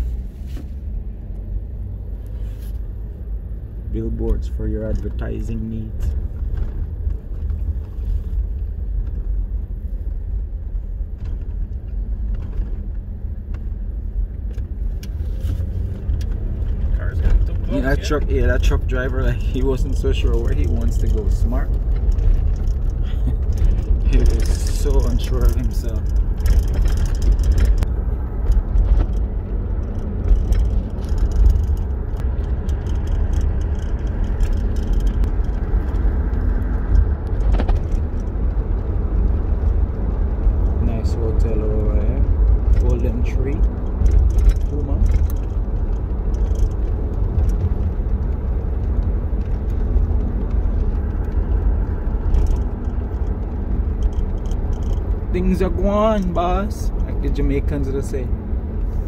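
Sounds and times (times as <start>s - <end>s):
car engine rumble: 0.0s - 59.0s.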